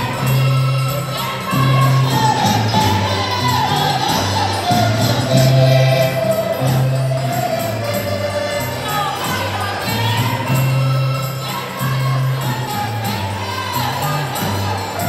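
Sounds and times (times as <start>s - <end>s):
group singing folk music: 0.0s - 15.0s
guitar: 0.0s - 15.0s.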